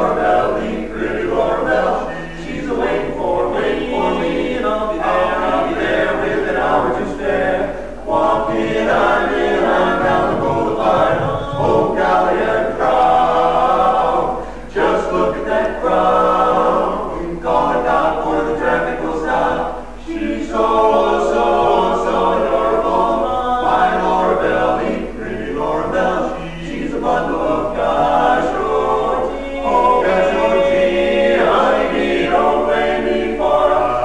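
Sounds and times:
male quartet singing a cappella: 0.0s - 34.0s.

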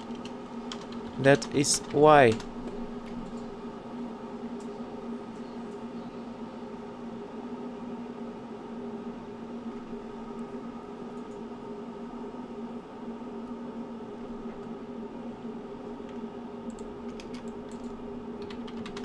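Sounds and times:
steady machine hum: 0.0s - 19.0s.

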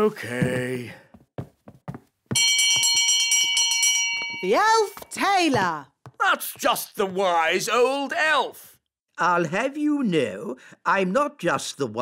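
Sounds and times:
brass hand bell ringing: 2.4s - 4.5s.

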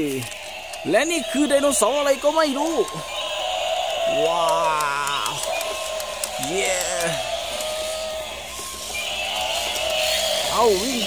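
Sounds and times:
steady electronic tone: 0.0s - 11.0s
toy motor noise: 0.0s - 11.0s.

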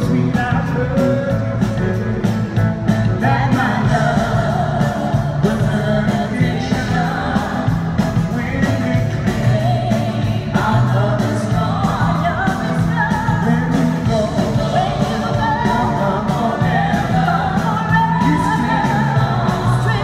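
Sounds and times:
live pop-rock band: 0.0s - 20.0s
two singers duet: 3.0s - 20.0s.

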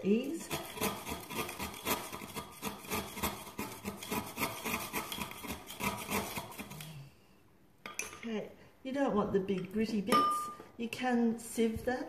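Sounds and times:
charcoal grated on metal grater: 0.0s - 6.9s.

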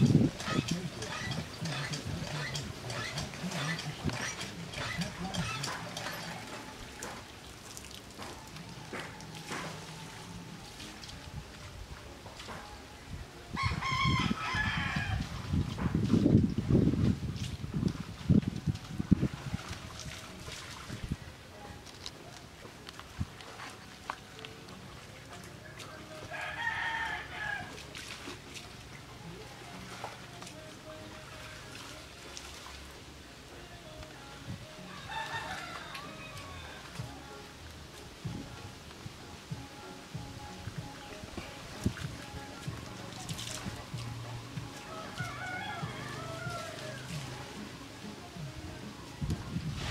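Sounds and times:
wind rumbling on microphone: 0.0s - 7.0s, 12.8s - 21.8s, 37.0s - 44.8s, 48.4s - 49.9s
rooster crowing: 13.6s - 15.3s, 26.3s - 27.8s, 34.9s - 37.0s, 44.8s - 47.2s.

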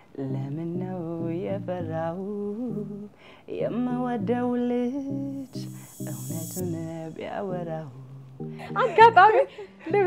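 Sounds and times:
woman singing slow melody: 0.0s - 10.0s.

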